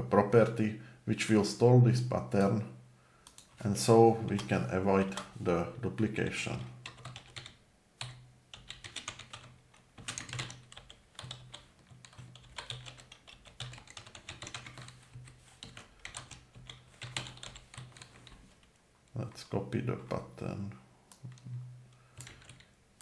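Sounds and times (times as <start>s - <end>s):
typing on computer keyboard: 6.8s - 18.4s, 22.1s - 22.7s.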